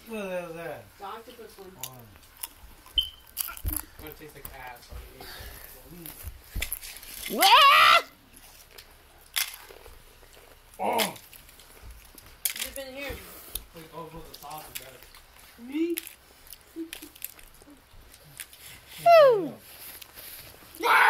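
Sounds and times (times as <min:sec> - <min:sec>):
excited voices shouting: 0:07.3 - 0:08.2, 0:19.0 - 0:19.6, 0:20.8 - 0:21.0.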